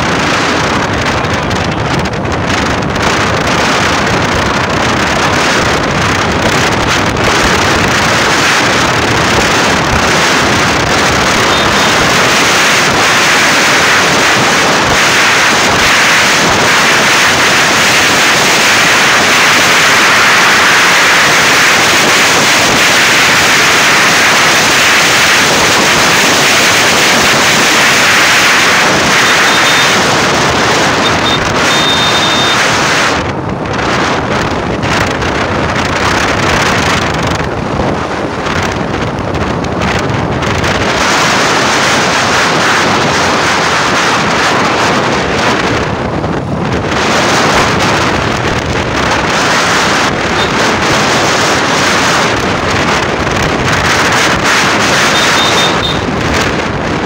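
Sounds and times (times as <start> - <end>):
wind rushing over microphone: 0.0 - 57.0.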